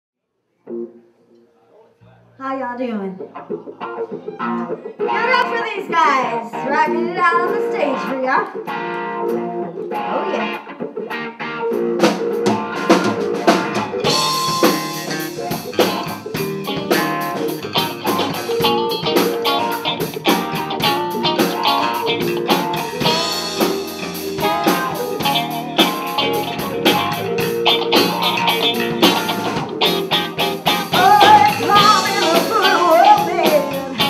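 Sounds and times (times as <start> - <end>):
blues band playing: 0.7 - 1.0, 2.8 - 34.0.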